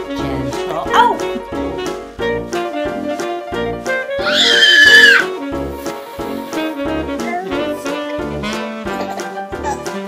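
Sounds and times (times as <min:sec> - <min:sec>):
upbeat jazzy music: 0:00.0 - 0:10.0
toddler shrieking: 0:04.2 - 0:05.3.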